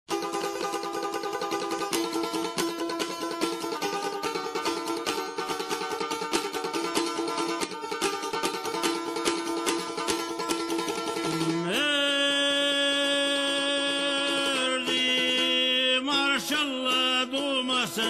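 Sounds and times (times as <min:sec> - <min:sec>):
plucked lute playing fast: 0:00.1 - 0:18.0
man singing long held note: 0:11.2 - 0:18.0.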